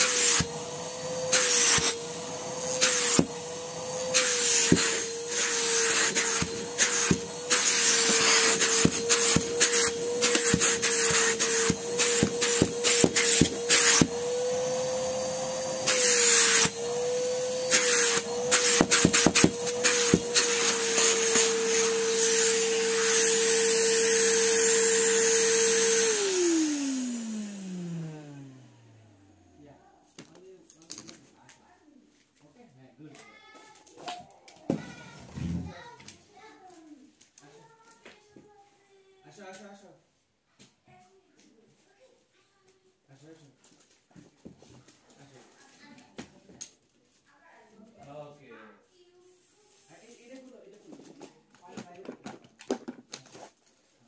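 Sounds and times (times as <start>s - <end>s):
vacuum cleaner running: 0.0s - 29.6s, 35.0s - 35.8s.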